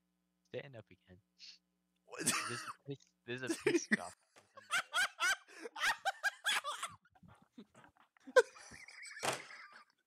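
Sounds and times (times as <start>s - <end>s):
laughter: 2.3s - 2.7s, 3.4s - 7.3s, 8.2s - 10.0s.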